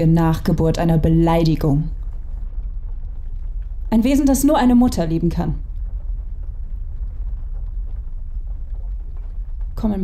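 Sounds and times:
deep low rumble: 0.0 - 10.0.

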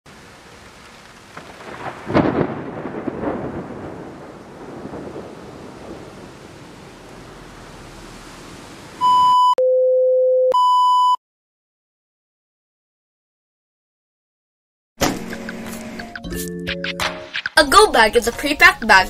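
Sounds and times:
thunderclap rumbling: 0.1 - 9.1
steady rain: 0.1 - 9.2
electronic beeps: 9.0 - 9.6.

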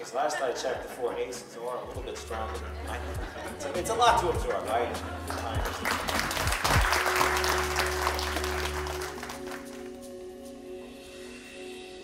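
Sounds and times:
soft music with held tones: 0.0 - 12.0
audience applauding: 5.1 - 10.0.

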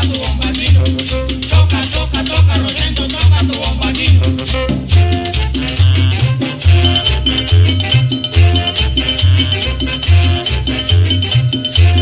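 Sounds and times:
brass melody: 0.0 - 12.0
deep repeating bass note: 0.0 - 12.0
fast high rattling rhythm: 0.0 - 12.0
tropical dance band instrumental: 0.0 - 12.0.

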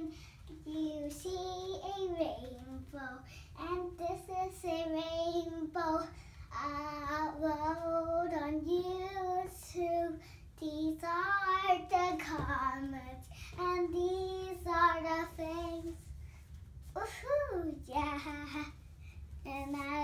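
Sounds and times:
girl singing long held notes: 0.0 - 16.0.

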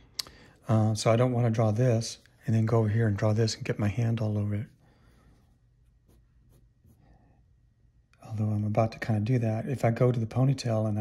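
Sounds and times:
pencil sketching on paper: 4.6 - 7.3.

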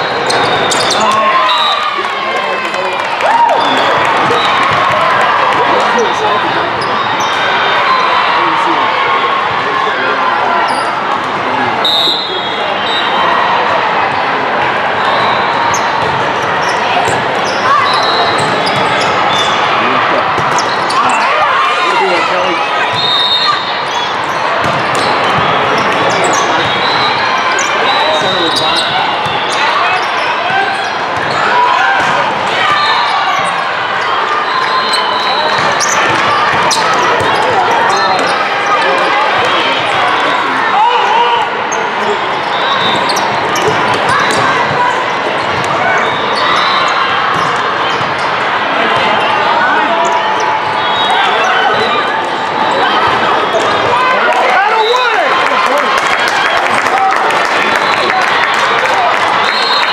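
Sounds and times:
shoes squeaking on court: 0.0 - 1.2, 15.7 - 19.7, 20.4 - 21.4, 23.9 - 31.5, 34.9 - 39.1, 42.5 - 48.4
din of many voices: 0.0 - 59.9.

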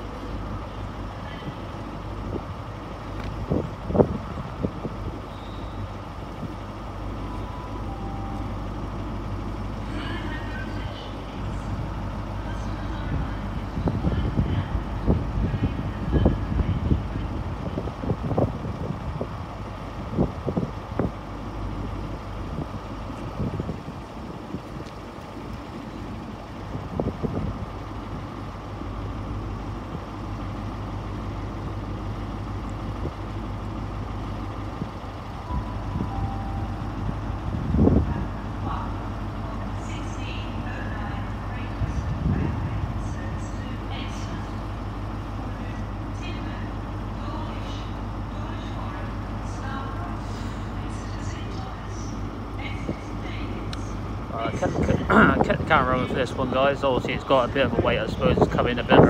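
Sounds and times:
diesel engine idling: 0.0 - 59.0
wind buffeting microphone: 1.4 - 5.3, 13.0 - 28.5, 36.8 - 39.3, 41.7 - 43.4, 54.0 - 56.3, 57.2 - 59.0.

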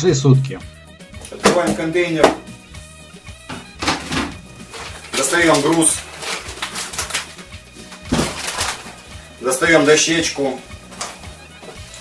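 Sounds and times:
background music: 0.0 - 12.0
plastic container and lid clattering: 3.5 - 9.0.

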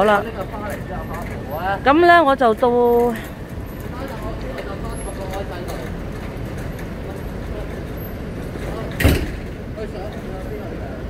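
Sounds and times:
low hum of traffic: 0.0 - 11.0.

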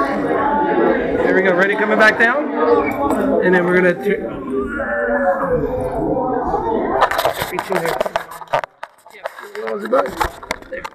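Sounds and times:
hands scraping and clicking on camera: 7.0 - 10.9.

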